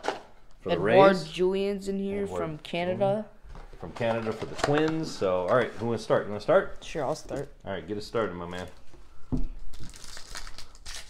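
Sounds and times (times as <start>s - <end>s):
wrapper crinkling as torn open: 9.6s - 11.0s.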